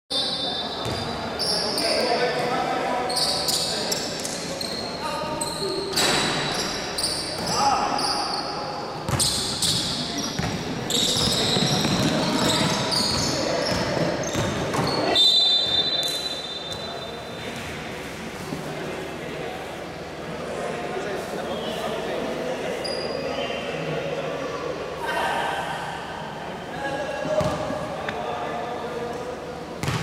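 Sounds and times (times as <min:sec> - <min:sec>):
shoe squeaks: 0:00.1 - 0:02.1, 0:03.0 - 0:17.3, 0:22.8 - 0:23.6
basketball bouncing on court: 0:00.8 - 0:01.1, 0:09.1 - 0:15.0, 0:27.4 - 0:27.8, 0:29.8 - 0:30.0.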